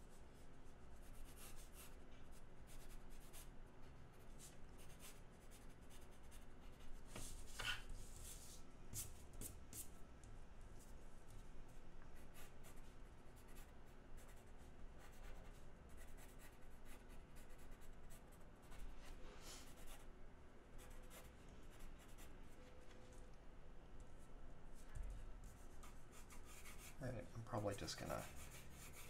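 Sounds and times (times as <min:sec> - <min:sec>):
pencil scratching on board: 0:25.5 - 0:27.0, 0:28.0 - 0:29.0.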